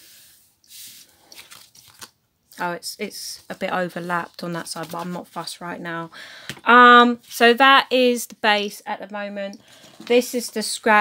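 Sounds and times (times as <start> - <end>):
card crinkling: 1.2 - 2.2, 3.4 - 5.5.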